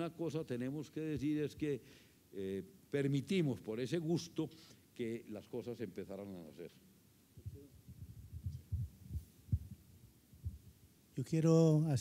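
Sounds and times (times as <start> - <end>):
microphone handling thumps: 7.4 - 10.8.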